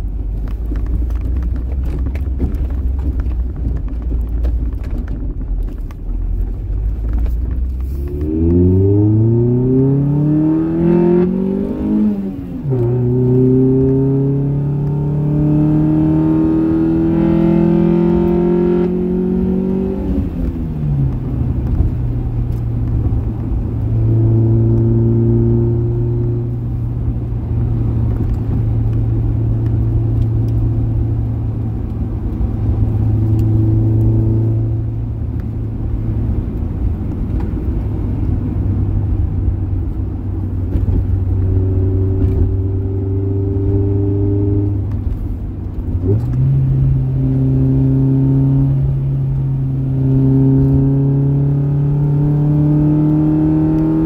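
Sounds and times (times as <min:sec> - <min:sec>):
car engine from inside cabin: 0:00.0 - 0:54.0.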